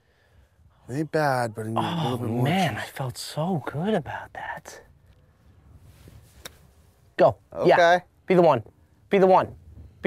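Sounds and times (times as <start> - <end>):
low rumble of wind: 0.0 - 10.0.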